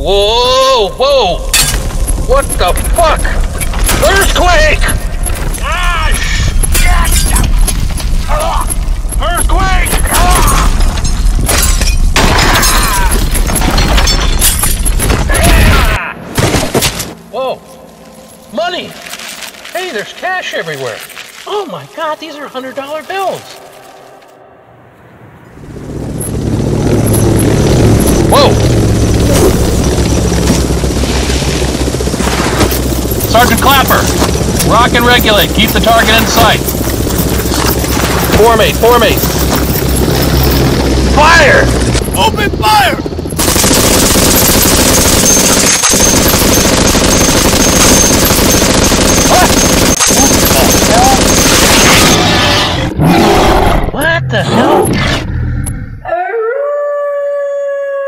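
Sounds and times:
debris crashing and shattering: 10.0 - 17.0
deep rumble: 24.3 - 44.0, 53.7 - 56.0.

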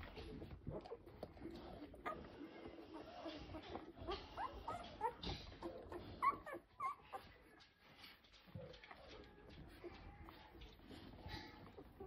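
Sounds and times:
puppies squeaking and whimpering: 0.0 - 12.0.

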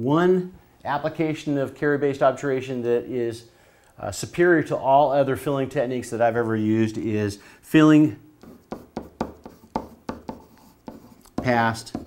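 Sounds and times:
marker pen writing on whiteboard: 8.4 - 12.0.

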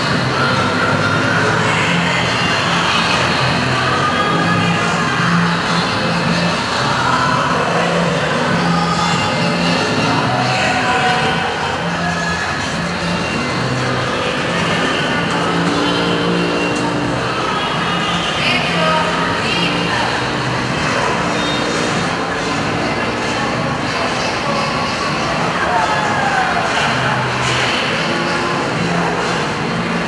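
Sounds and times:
indistinct talking: 0.0 - 30.0
loud background din: 0.0 - 30.0
music: 0.0 - 30.0.

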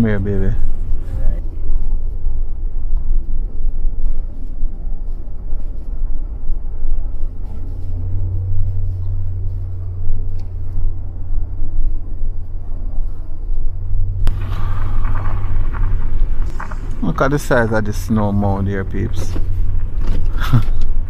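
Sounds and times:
car driving rumble: 0.0 - 21.0.

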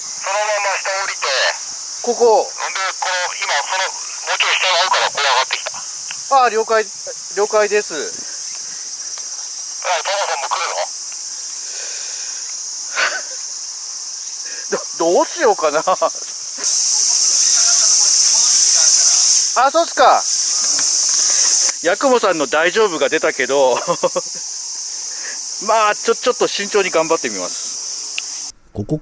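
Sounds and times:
cicadas buzzing: 0.0 - 28.9.

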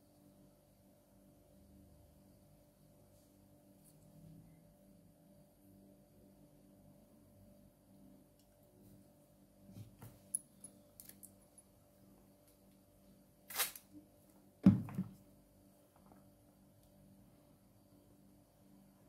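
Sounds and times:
low steady hum: 0.0 - 19.0
desk handling noises: 14.6 - 15.2.

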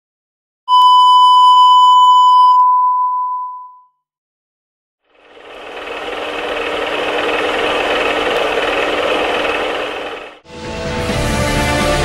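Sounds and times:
steady pure test tone beep: 0.7 - 4.0.

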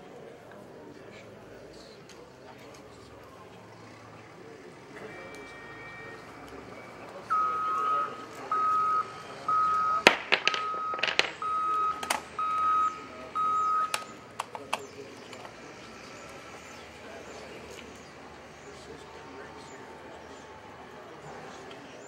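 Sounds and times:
reversing alarm beeps: 5.0 - 10.0, 10.6 - 14.3.

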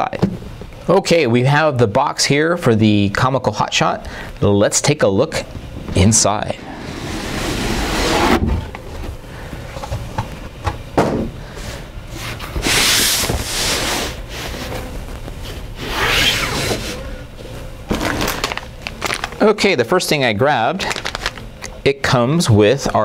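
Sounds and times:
cardboard scraping: 6.7 - 9.1
plastic bags rustling: 17.9 - 19.8, 20.8 - 21.6.

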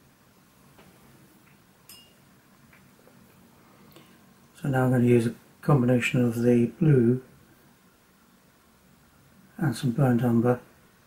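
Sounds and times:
small sharp clink: 1.9 - 2.2.

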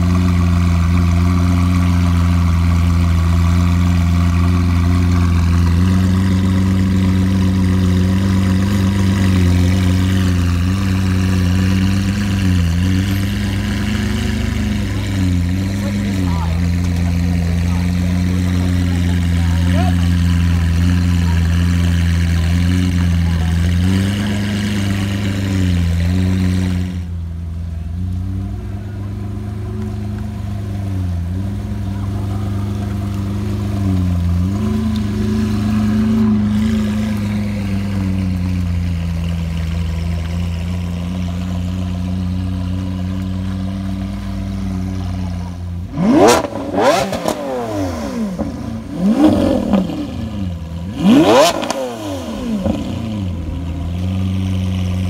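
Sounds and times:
engine throttle blips: 0.0 - 55.0
sports car engine pulling away: 0.0 - 55.0.

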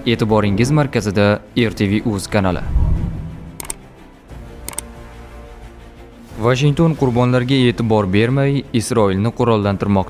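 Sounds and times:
low background music: 0.0 - 10.0
mouse double clicks: 3.6 - 3.9, 4.7 - 4.9.

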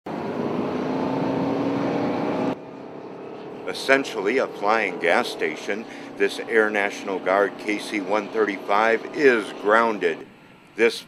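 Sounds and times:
jet engines running: 0.1 - 11.0.

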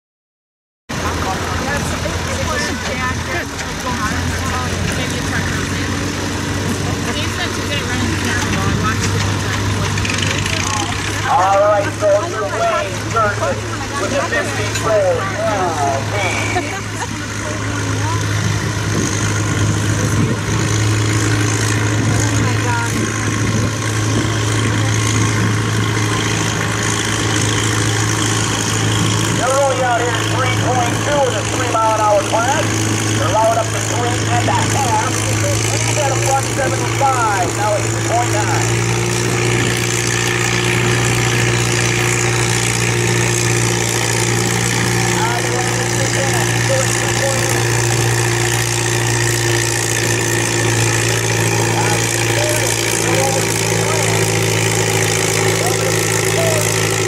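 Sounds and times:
tractor engine droning: 0.9 - 57.0
voices: 1.0 - 57.0.

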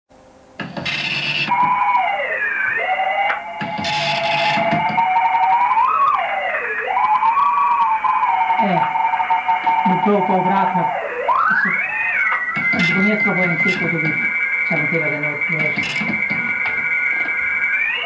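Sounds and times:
radio whistling tones sliding in pitch: 0.9 - 8.3, 11.0 - 18.0.

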